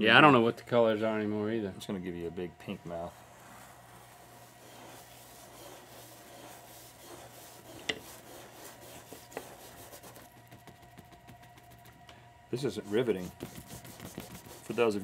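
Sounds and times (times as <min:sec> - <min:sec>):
paintbrushes rubbing on canvas: 0:02.6 - 0:12.0, 0:12.6 - 0:15.0.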